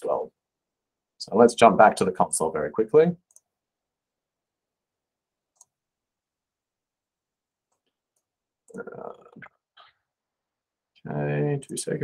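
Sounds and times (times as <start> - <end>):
computer mouse clicks: 3.3 - 3.5, 5.5 - 5.8.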